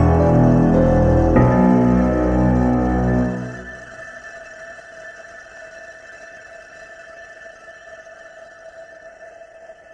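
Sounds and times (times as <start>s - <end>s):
electronic drone of held tones: 0.0s - 4.5s.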